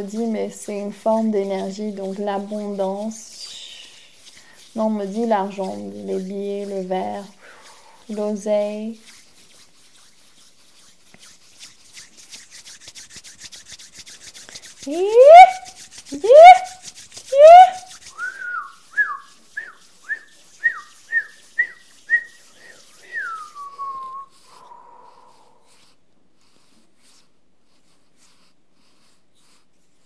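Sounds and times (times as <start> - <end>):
hands rubbing together: 0.0 - 30.0
falling whistled notes: 16.2 - 16.7, 17.4 - 22.4, 23.0 - 24.3
rising vocal whoops: 17.4 - 17.8.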